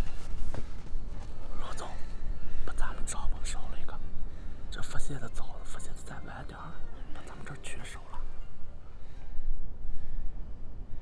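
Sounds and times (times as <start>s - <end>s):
steady low rumble: 0.0s - 11.0s
man speaking in hushed voice: 1.5s - 4.1s, 4.7s - 8.3s.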